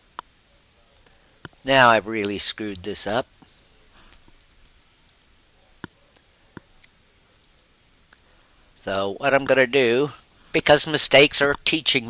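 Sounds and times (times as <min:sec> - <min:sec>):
computer mouse clicks: 0:03.8 - 0:08.8.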